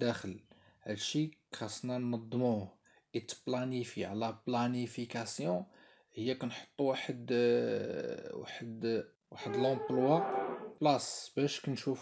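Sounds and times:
person talking: 0:08.8 - 0:11.1.

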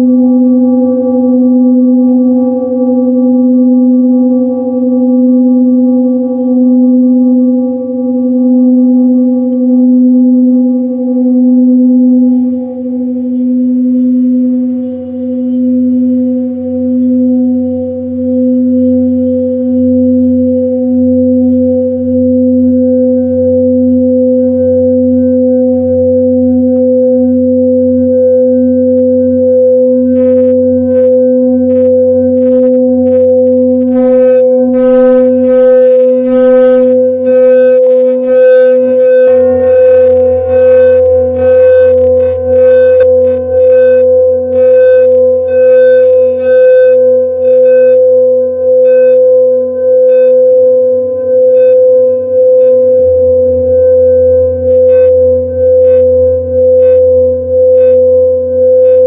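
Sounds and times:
shimmering high overtones: 0:00.0 - 0:48.7
singing bowls humming: 0:00.0 - 0:59.0.

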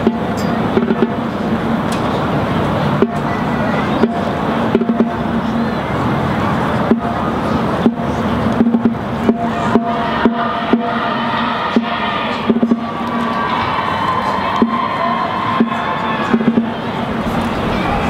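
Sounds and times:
drum hits: 0:00.0 - 0:01.8, 0:04.0 - 0:05.4, 0:07.8 - 0:13.4, 0:14.5 - 0:14.9, 0:15.5 - 0:17.4
marching band playing: 0:00.0 - 0:01.9, 0:02.5 - 0:05.7, 0:06.7 - 0:18.0
crowd noise: 0:00.0 - 0:18.0
held brass chords: 0:02.8 - 0:05.7, 0:06.8 - 0:13.9.

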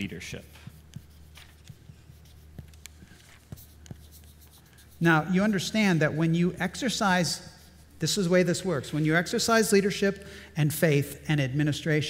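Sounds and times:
chalk scratching on chalkboard: 0:00.2 - 0:10.0
chalk tapping on board: 0:00.5 - 0:05.7.

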